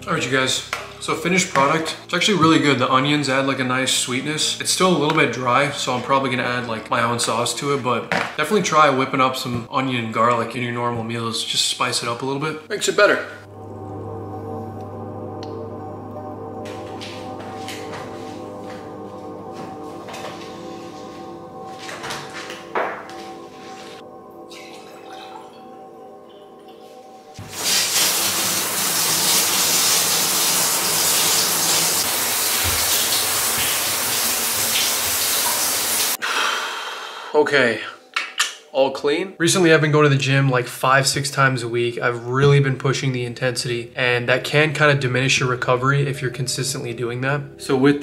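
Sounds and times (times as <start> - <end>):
background music sustained tones: 0.0 - 48.0
shower water spraying: 27.3 - 36.2.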